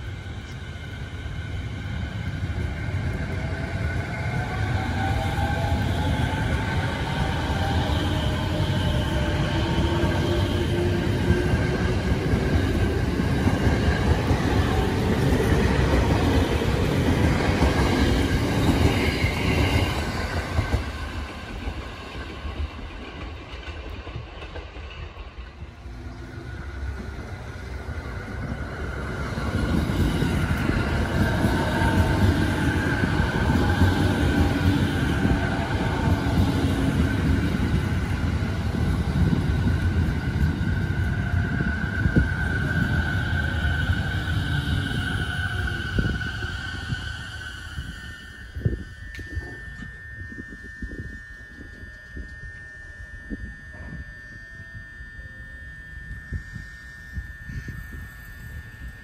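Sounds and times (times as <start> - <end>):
electric train passing: 0.0 - 59.0
high train whine: 0.0 - 59.0.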